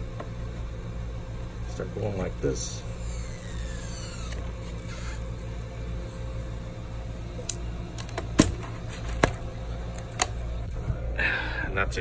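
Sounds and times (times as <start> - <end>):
steady low hum: 0.0 - 12.0
adhesive strip stretching: 2.9 - 5.5.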